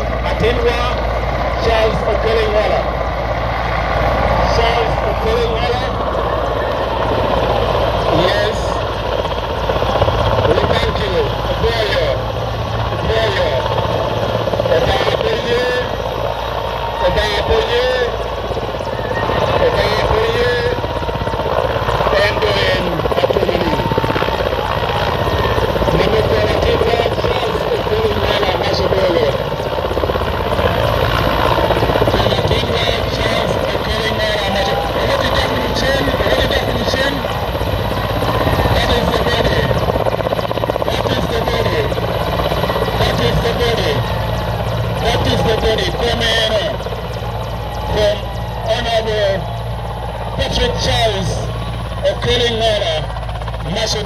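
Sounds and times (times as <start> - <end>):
helicopter rotor beating: 0.0 - 54.0
people's voices: 0.0 - 54.0.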